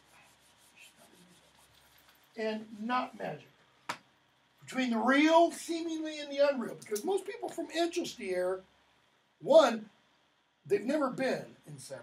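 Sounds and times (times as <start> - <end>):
marker rubbing on whiteboard: 0.0 - 2.1.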